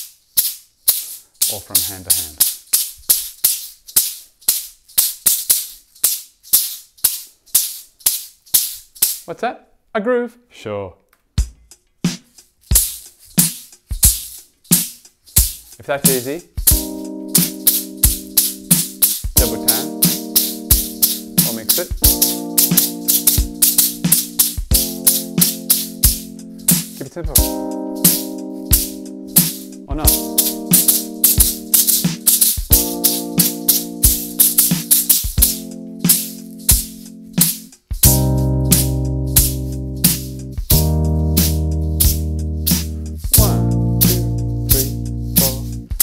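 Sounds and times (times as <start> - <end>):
shaker hits: 0.0 - 9.3, 11.4 - 46.0
low beat: 11.4 - 46.0
keyboard chords: 16.1 - 46.0.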